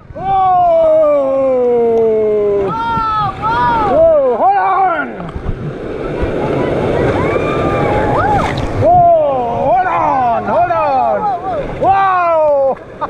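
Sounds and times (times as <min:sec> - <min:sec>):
rushing white water: 0:00.0 - 0:13.0
people yelling: 0:00.1 - 0:05.3, 0:06.0 - 0:12.8.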